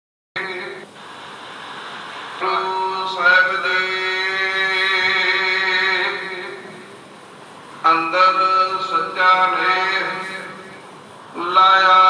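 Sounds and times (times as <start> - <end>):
man chanting: 0.4 - 0.9, 2.4 - 6.9, 7.8 - 12.0.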